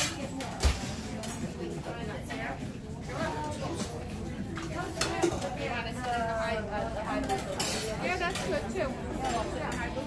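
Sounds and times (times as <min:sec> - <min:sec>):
utensils clinking on metal pans: 0:00.0 - 0:01.6, 0:04.6 - 0:05.9, 0:07.0 - 0:10.0
background chatter: 0:00.0 - 0:10.0.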